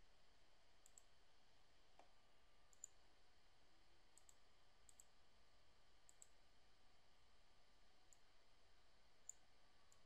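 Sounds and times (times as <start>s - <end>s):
computer mouse clicks: 0.8s - 1.1s, 2.0s - 3.0s, 4.1s - 5.2s, 6.1s - 6.4s, 8.1s - 8.3s, 9.2s - 10.0s.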